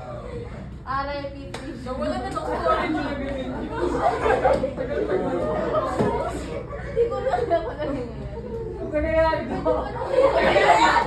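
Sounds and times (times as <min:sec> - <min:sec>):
students chattering: 0:00.0 - 0:11.0.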